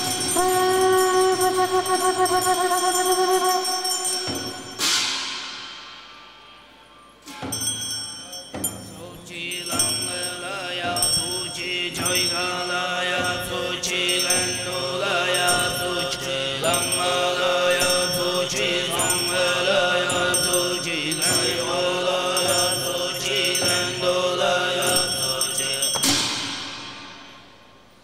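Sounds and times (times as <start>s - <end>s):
low chanting: 0.0s - 4.8s, 8.3s - 26.2s
high metallic percussion ringing: 0.0s - 28.0s.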